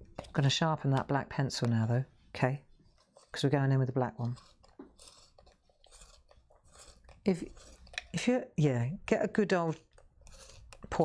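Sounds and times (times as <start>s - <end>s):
pencil sharpener scraping: 2.9s - 8.2s, 9.7s - 11.0s.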